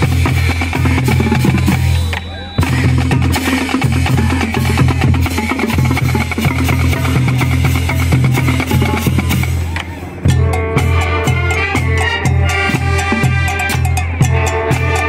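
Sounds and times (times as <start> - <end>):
marching drumline: 0.0 - 15.0
low brass bass line: 6.0 - 15.0.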